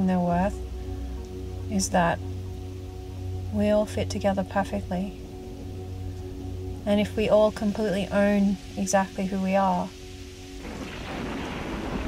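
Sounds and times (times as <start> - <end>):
low ambient drone: 0.0 - 12.0.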